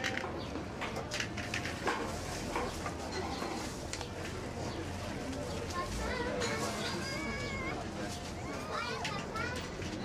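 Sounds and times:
murmur of voices: 0:00.0 - 0:10.0
children calling and talking: 0:04.6 - 0:10.0.

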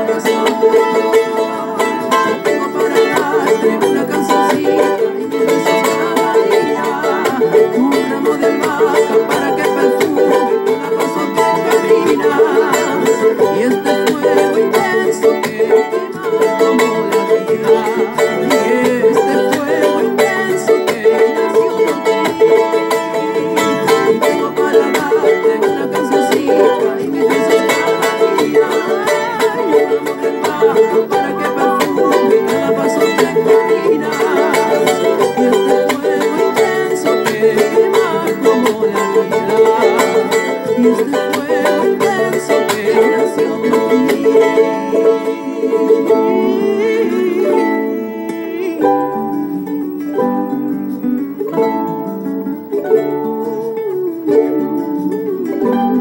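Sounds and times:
charango strumming: 0:00.0 - 0:56.0.

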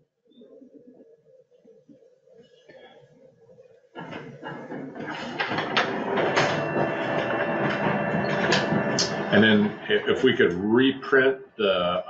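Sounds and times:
photocopier clicks: 0:04.0 - 0:09.4
photocopier running: 0:04.0 - 0:10.6.

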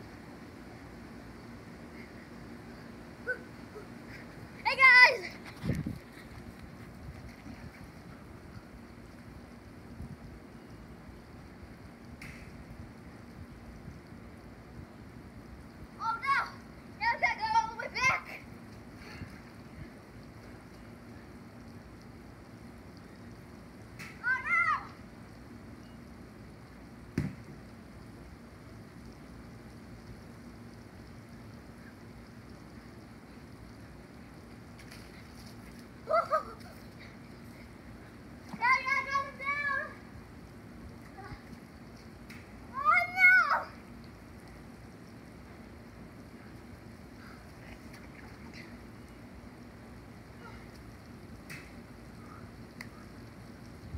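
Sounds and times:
child shouting and whooping: 0:04.6 - 0:05.4, 0:16.0 - 0:18.4, 0:24.2 - 0:25.0, 0:36.0 - 0:36.8, 0:38.6 - 0:40.0, 0:42.7 - 0:43.8.

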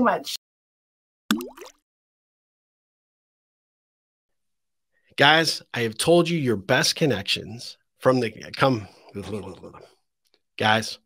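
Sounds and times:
water drop plopping: 0:01.3 - 0:01.8.

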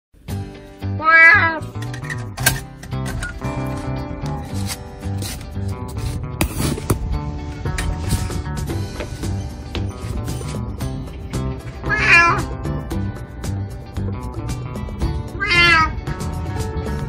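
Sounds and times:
background music: 0:00.2 - 0:17.0
cat meowing: 0:01.0 - 0:01.8, 0:11.8 - 0:12.6, 0:15.3 - 0:16.1.

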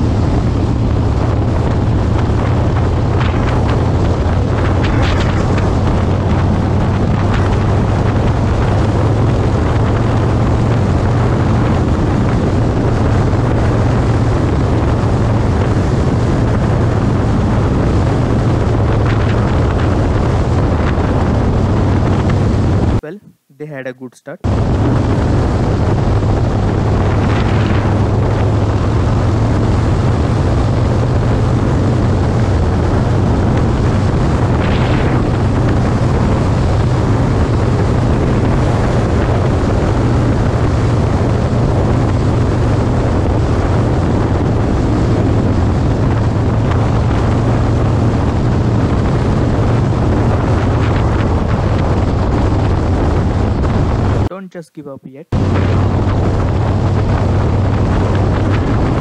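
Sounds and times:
motorcycle engine drone: 0:00.0 - 0:23.5, 0:24.4 - 0:54.4, 0:55.3 - 0:59.0
wind noise on microphone: 0:00.0 - 0:59.0.

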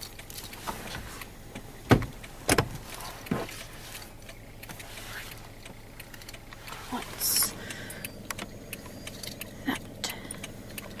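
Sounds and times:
car engine idling: 0:00.0 - 0:11.0
light clicks and rattles: 0:00.0 - 0:11.0.

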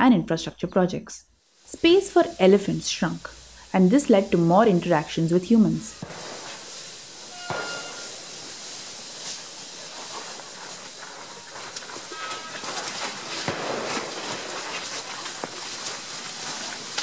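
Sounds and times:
elephants walking on leaf litter: 0:01.6 - 0:17.0.

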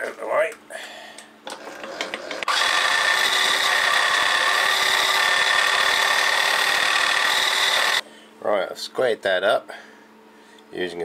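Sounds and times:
milling machine cutting metal: 0:02.4 - 0:08.0.

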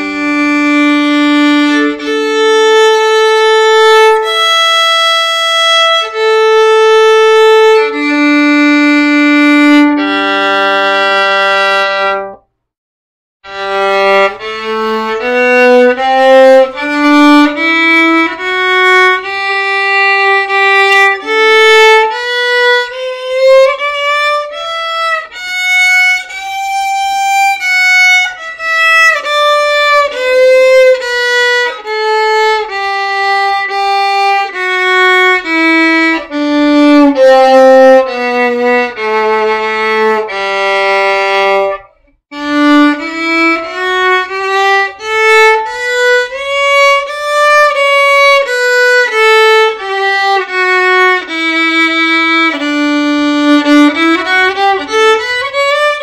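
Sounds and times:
violin playing scales: 0:00.0 - 0:12.5, 0:13.4 - 0:56.0.

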